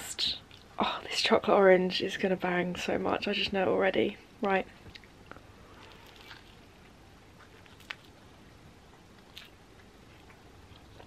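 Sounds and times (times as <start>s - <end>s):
faint chewing: 0.4s - 0.9s, 4.8s - 11.0s.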